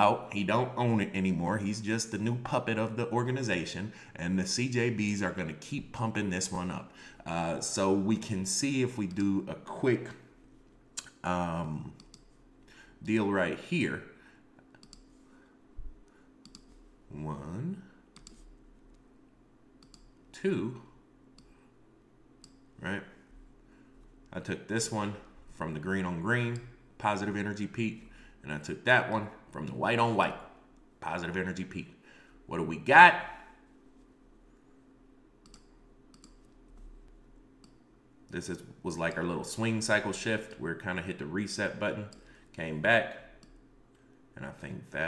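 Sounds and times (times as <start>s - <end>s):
computer mouse clicks: 12.0s - 12.4s, 14.7s - 15.2s, 16.4s - 16.8s, 18.1s - 19.0s, 19.8s - 20.2s, 22.4s - 22.6s, 35.4s - 36.8s, 37.6s - 37.8s
faint computer mouse clicks: 14.8s - 15.1s, 16.4s - 16.7s, 19.8s - 20.1s, 35.4s - 36.6s.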